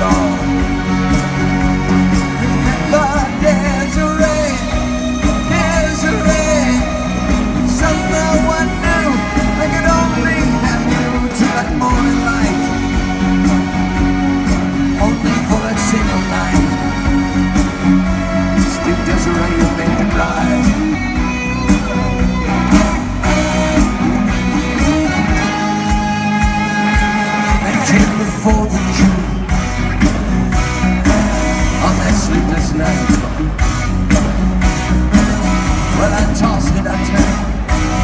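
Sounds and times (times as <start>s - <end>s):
live pop-rock band: 0.0s - 38.0s.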